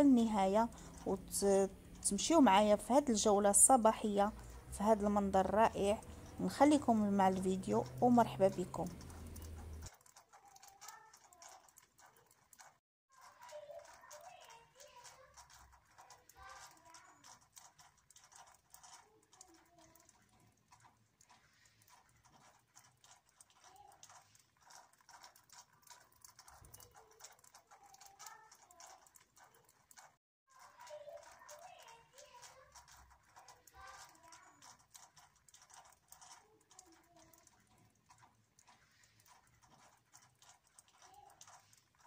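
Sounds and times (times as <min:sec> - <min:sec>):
soft scattered clicks: 0:00.0 - 0:42.0.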